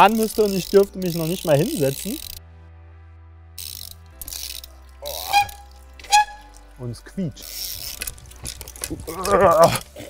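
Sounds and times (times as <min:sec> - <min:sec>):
bike freewheel ratcheting: 0:00.0 - 0:02.4, 0:03.6 - 0:06.6, 0:07.4 - 0:10.0.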